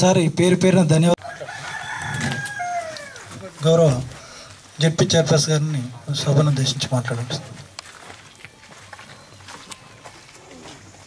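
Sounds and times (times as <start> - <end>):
rooster crowing: 1.2 - 3.6.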